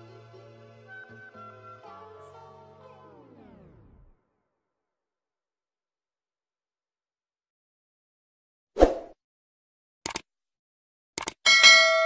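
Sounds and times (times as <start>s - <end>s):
bell chime: 11.5s - 12.0s.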